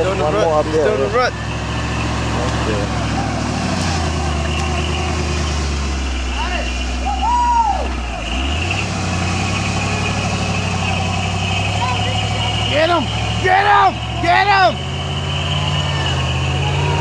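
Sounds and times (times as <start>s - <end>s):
truck engine running at low revs: 0.0s - 17.0s.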